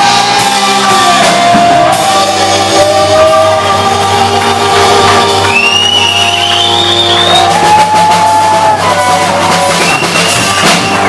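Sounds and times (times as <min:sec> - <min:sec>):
rock band playing: 0:00.0 - 0:11.0.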